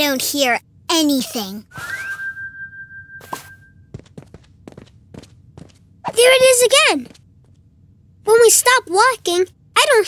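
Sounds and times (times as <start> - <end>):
high whistle-like tone: 1.7 - 3.9
footsteps on wooden floor: 4.0 - 5.8.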